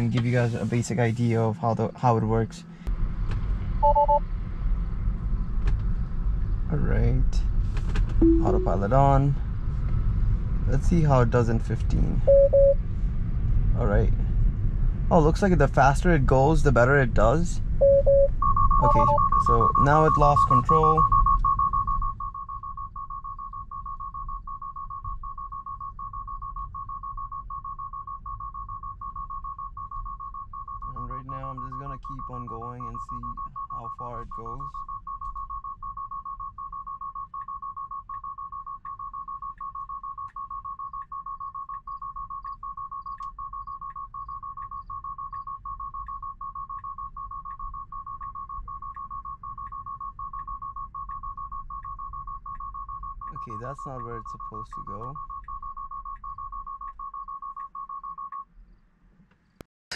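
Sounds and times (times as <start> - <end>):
low road rumble: 0.0 - 59.7
high-pitched alarm beeps: 3.8 - 4.2, 8.2 - 9.0, 12.2 - 12.8, 17.8 - 58.5.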